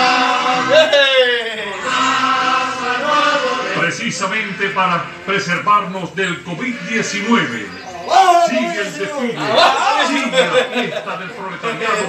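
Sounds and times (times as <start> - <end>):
voices chanting: 0.0 - 12.0.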